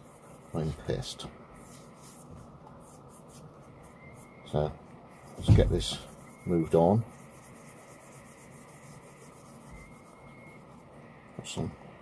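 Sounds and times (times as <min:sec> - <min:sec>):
leather sheath rubbing: 0:05.2 - 0:10.8.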